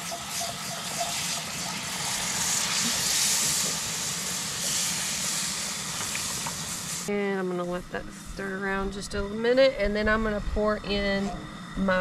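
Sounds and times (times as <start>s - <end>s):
milk sizzling in hot pan: 0.0s - 7.2s.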